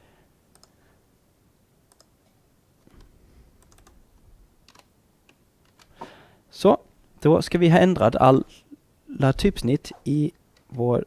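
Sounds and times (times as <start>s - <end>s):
computer keyboard keystrokes: 3.6s - 4.0s, 4.6s - 4.9s.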